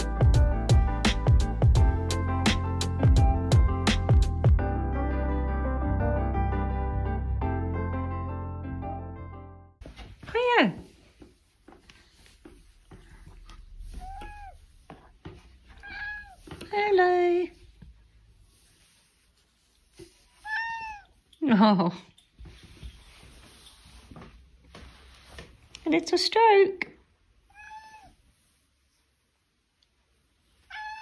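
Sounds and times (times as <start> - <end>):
cat meowing: 13.8 - 14.7, 15.7 - 16.5, 20.4 - 21.2, 27.4 - 28.2, 30.7 - 31.0.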